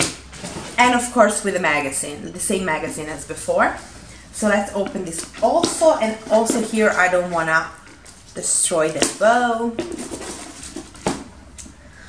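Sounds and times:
ribbon and cardboard rustling: 0:00.0 - 0:11.3.

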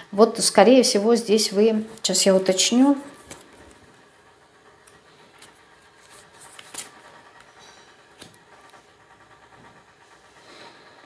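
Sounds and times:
tarot cards rustling on tabletop: 0:03.1 - 0:03.8, 0:04.8 - 0:08.4.

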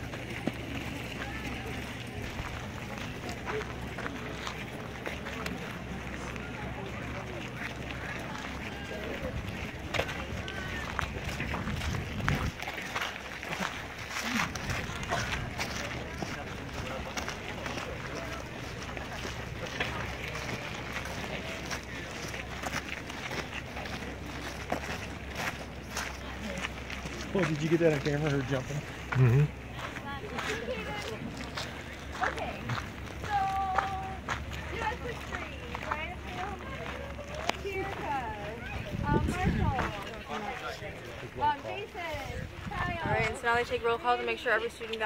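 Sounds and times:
low steady rumble: 0:00.0 - 0:44.6
footsteps crunching on gravel: 0:00.0 - 0:45.0
indistinct voices chattering: 0:00.0 - 0:45.0.

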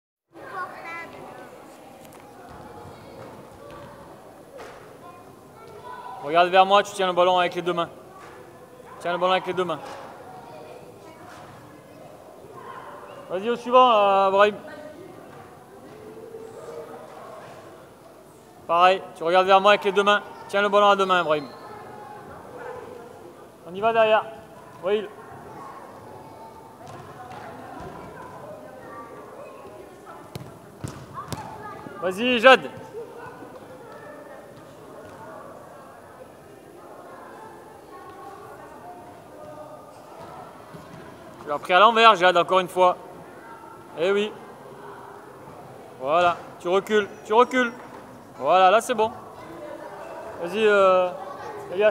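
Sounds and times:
faint background voices: 0:00.3 - 0:13.7, 0:14.5 - 0:51.9
sports hall background noise: 0:00.3 - 0:51.9.

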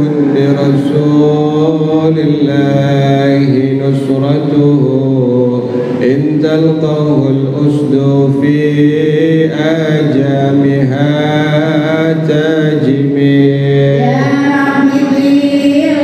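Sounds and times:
man chanting into a microphone: 0:00.0 - 0:15.2.

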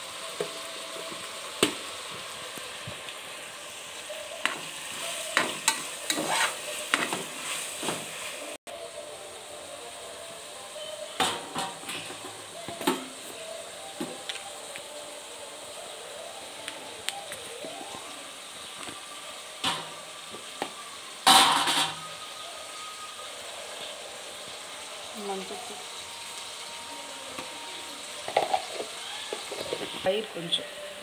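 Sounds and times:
frying sizzle: 0:00.0 - 0:31.0.

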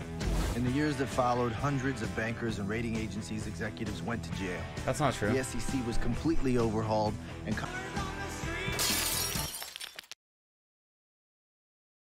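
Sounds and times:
film soundtrack music: 0:00.0 - 0:08.7.

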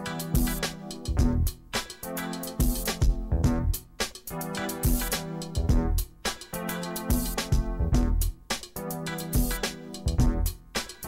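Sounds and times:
music with steady drum beat: 0:00.0 - 0:11.0.

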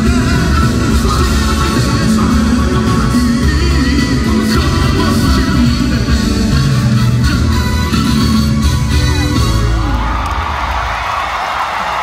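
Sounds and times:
band music with bass: 0:00.0 - 0:11.1
crowd cheering and whooping: 0:09.0 - 0:12.0
crowd shouts: 0:09.1 - 0:12.0.

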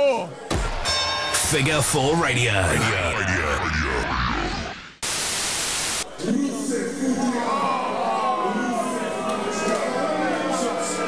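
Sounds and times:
echoing spoken radio jingle: 0:01.4 - 0:06.0
hissing static: 0:01.5 - 0:06.1.

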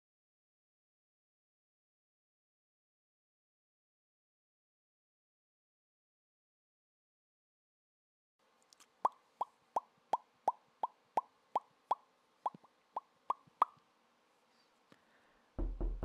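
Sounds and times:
loud low thud: 0:15.6 - 0:16.0.

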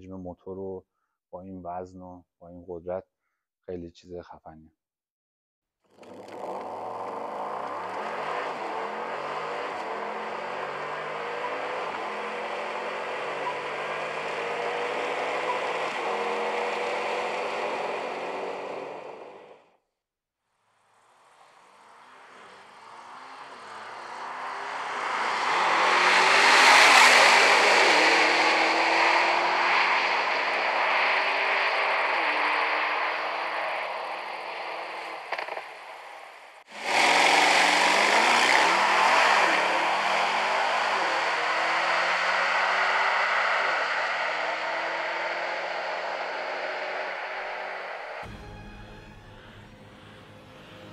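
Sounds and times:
sports car engine accelerating: 0:06.3 - 0:19.7, 0:21.9 - 0:35.6, 0:36.8 - 0:50.9
car passing by: 0:21.5 - 0:34.1.

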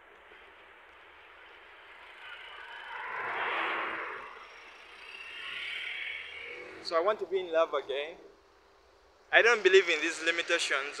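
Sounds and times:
vehicle passing by: 0:01.7 - 0:07.9.

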